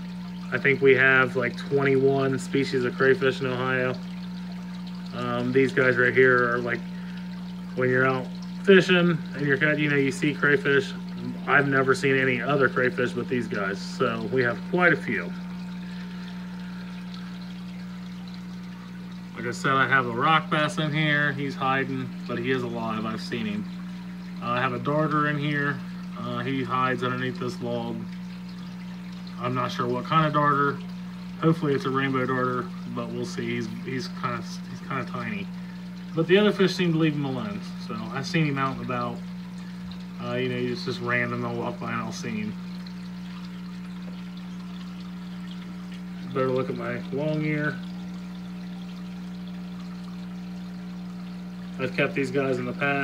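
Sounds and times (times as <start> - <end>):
airstone bubbling water: 0.0 - 53.0
aquarium pump hum: 0.0 - 53.0.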